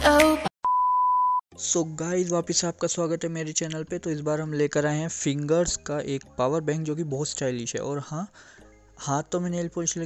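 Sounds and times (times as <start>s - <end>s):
electronic beep: 0.6s - 1.4s.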